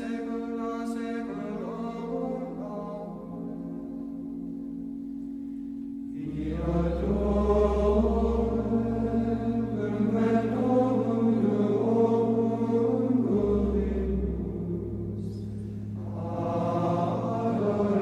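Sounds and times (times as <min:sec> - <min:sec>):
choral chant: 0:00.0 - 0:04.4, 0:06.0 - 0:18.0
low bass drone: 0:00.0 - 0:18.0.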